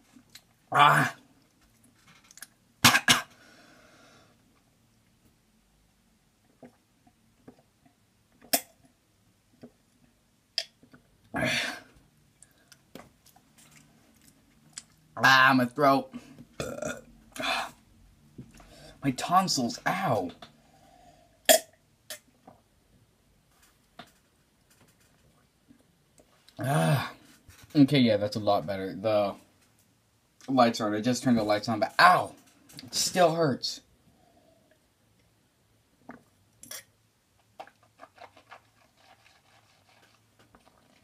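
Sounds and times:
swallowing and mouth noises: 6.5 - 7.7, 36.0 - 41.0
breathy sound: 20.6 - 21.4.

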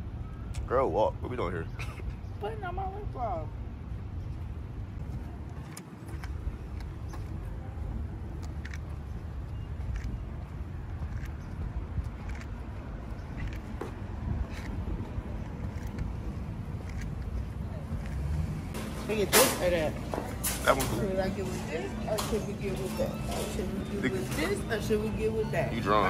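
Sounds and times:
footsteps on concrete: 4.4 - 18.5.

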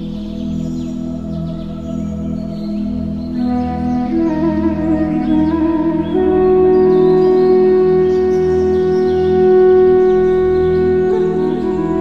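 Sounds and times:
flute long note: 3.4 - 12.0.

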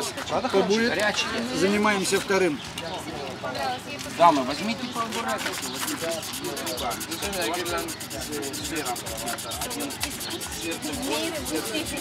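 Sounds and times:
sanding on abrasive sheet: 5.3 - 12.0.

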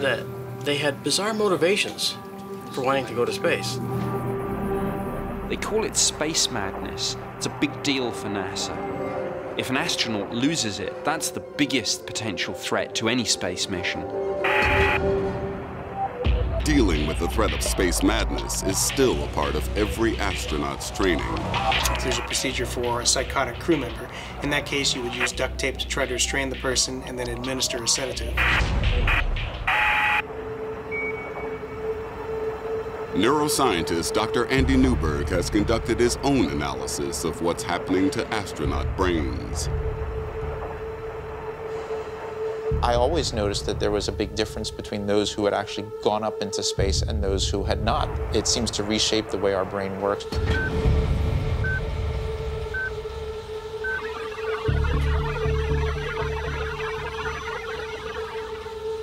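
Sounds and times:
low drone tone: 27.4 - 44.1, 50.2 - 59.0
low pulsing bass: 54.6 - 58.6.

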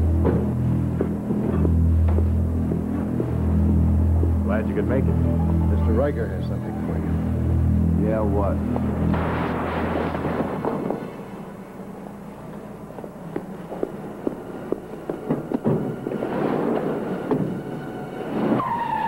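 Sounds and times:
knocks and bumps: 0.2 - 3.4
car tyres skidding: 16.4 - 19.0.

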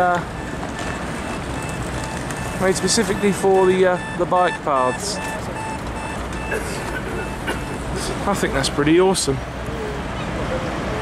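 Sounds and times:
street traffic rumble: 0.0 - 11.0
faint high beep: 1.2 - 6.6, 7.2 - 7.8.

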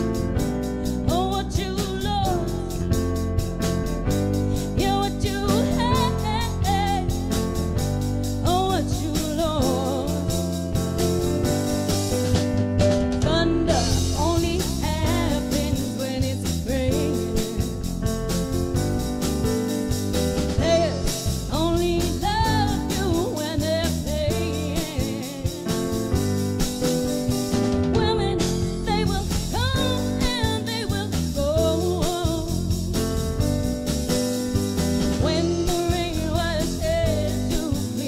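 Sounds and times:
drum kit beat: 0.0 - 38.0
electric bass guitar: 0.0 - 38.0
person singing: 4.5 - 7.3, 8.4 - 10.6, 13.2 - 17.8, 20.6 - 25.8, 28.0 - 32.6, 35.2 - 38.0.

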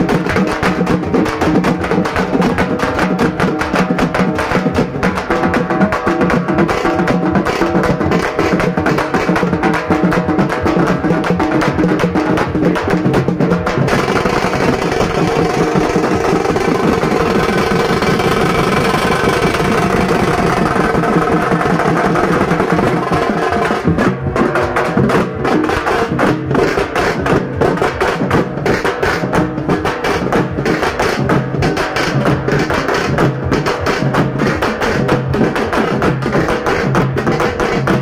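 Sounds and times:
procession drumming with music: 0.0 - 38.0
rapid sharp drum strikes: 0.0 - 38.0.

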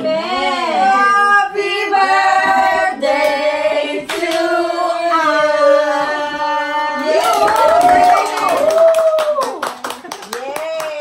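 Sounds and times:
voices singing together: 0.0 - 8.1
hand claps: 7.1 - 11.0.

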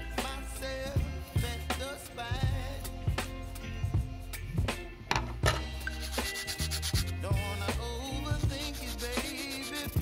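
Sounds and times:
music with steady beat: 0.0 - 10.0
sanding wood by hand: 5.9 - 7.2, 8.4 - 10.0.

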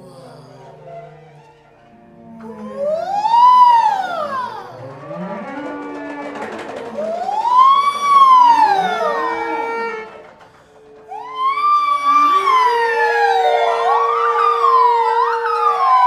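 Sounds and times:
improvising instruments sliding tones: 0.0 - 16.0
person wailing voice sliding: 2.2 - 5.8, 6.9 - 10.4, 11.1 - 16.0.

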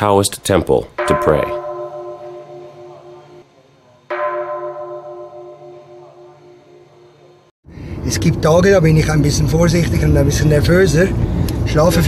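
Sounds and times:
temple bell ringing: 1.0 - 3.5, 4.1 - 7.4.

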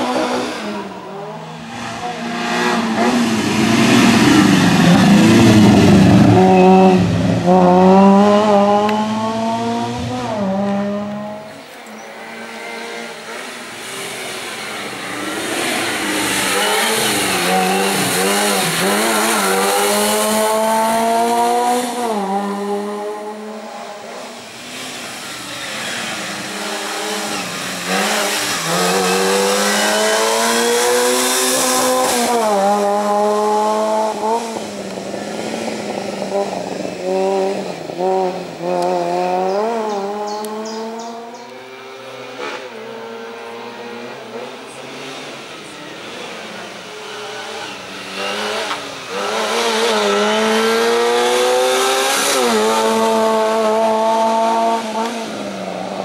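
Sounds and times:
small race car engine revving: 0.0 - 56.0.

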